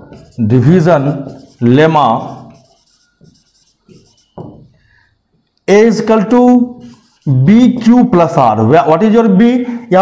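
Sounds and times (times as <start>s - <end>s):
marker writing on whiteboard: 0.0s - 5.0s, 5.9s - 8.3s.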